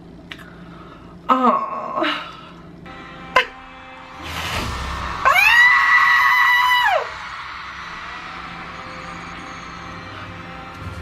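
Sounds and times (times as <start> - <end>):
person screaming excitedly: 5.2 - 7.3.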